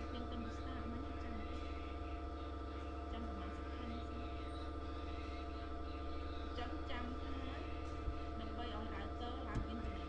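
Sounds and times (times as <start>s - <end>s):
faint distant voices: 0.0s - 10.0s
low electrical hum: 0.0s - 10.0s.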